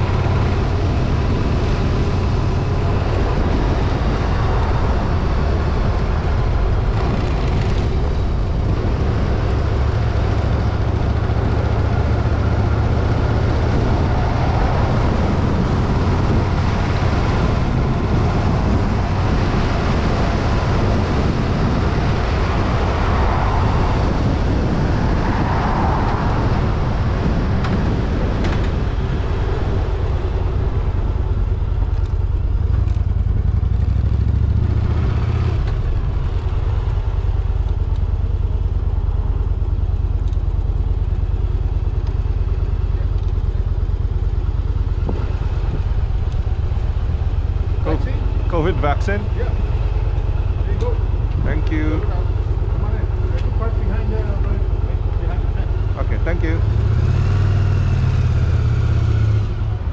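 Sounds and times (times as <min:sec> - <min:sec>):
wind and road noise: 0:00.0 - 0:59.9
motorcycle engine running: 0:26.8 - 0:59.9.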